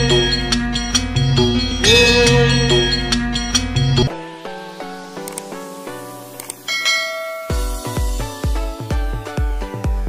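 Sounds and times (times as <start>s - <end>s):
bell-chime notification: 0.0s - 4.1s, 6.7s - 7.9s
music with pulsing bass beat: 0.0s - 4.1s, 6.9s - 10.0s
mouse-click sound effects: 5.2s - 5.5s, 6.3s - 6.7s.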